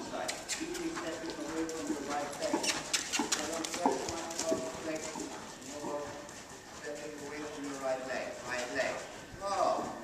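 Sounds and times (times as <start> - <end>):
hoofbeats on sand: 0.1 - 10.0.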